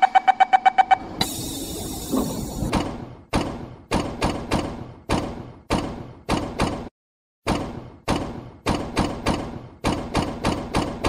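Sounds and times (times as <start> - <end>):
rushing hiss: 1.2 - 2.7.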